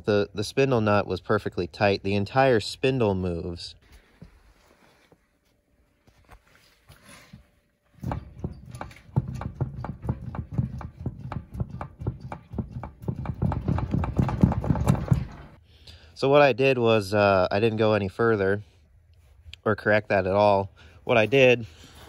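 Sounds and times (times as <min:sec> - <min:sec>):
wheel assembly clunking: 0:08.0 - 0:15.6.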